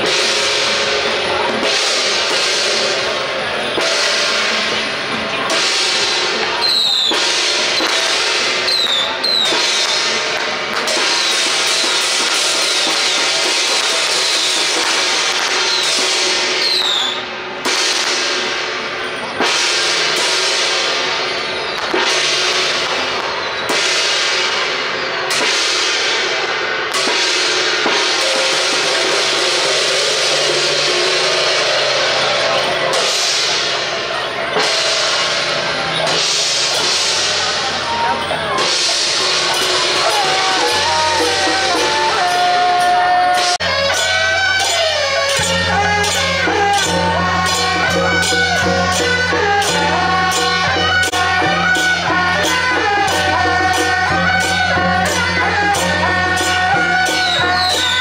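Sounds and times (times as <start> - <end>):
crashing cymbals: 0.0 - 58.0
drum beating: 17.5 - 58.0.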